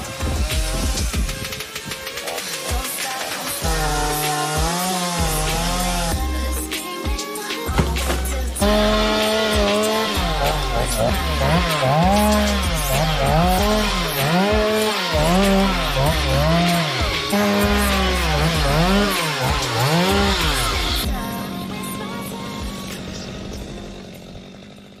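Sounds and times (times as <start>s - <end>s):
chainsaw cutting tree trunk: 0.0s - 25.0s.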